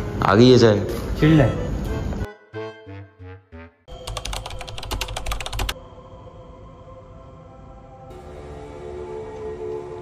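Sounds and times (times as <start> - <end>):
falling musical notes: 2.2 - 3.9
rapid clicking: 4.0 - 5.8
low eerie ambient drone: 5.5 - 10.0.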